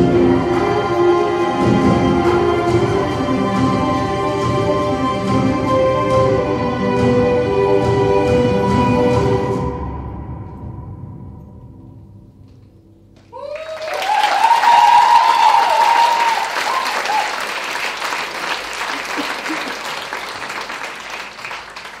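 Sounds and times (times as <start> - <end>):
audience applause and cheering: 13.2 - 22.0
whoops and shouts: 13.3 - 17.4.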